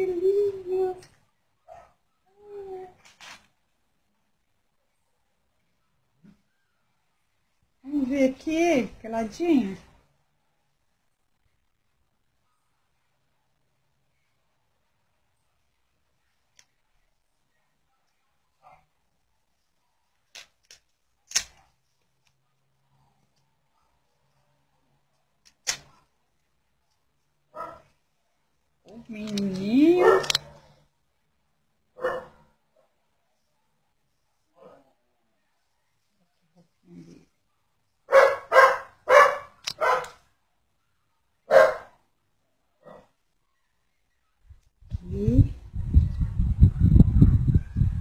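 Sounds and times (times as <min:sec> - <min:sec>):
dog barking: 0:01.6 - 0:02.0, 0:18.6 - 0:18.9, 0:27.5 - 0:27.9, 0:30.0 - 0:30.6, 0:32.0 - 0:33.0, 0:34.5 - 0:35.0, 0:38.1 - 0:40.2, 0:41.4 - 0:42.0, 0:42.8 - 0:43.2
diaper crackling snaps: 0:20.2 - 0:22.4, 0:25.4 - 0:26.0.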